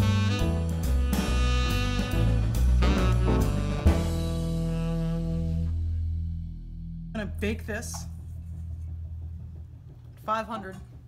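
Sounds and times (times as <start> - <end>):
music holding a chord: 0.0 - 7.2.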